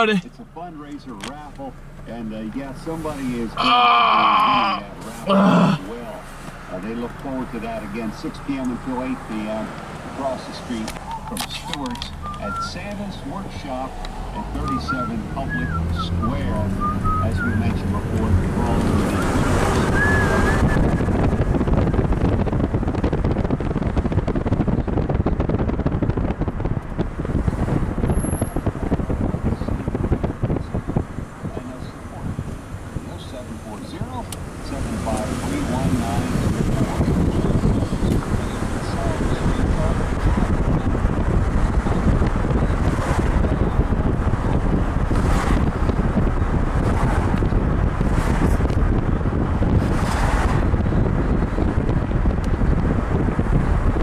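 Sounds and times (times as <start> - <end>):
low road noise: 0.0 - 54.0
low rumble of moving car: 0.0 - 54.0
whooshes of passing traffic: 4.9 - 54.0
wind buffeting microphone: 7.5 - 54.0.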